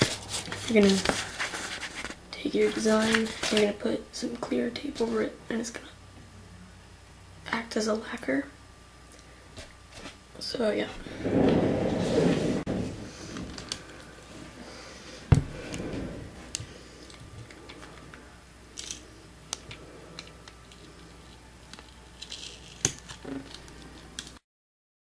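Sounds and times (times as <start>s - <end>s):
packing tape crackling: 18.8s - 24.4s.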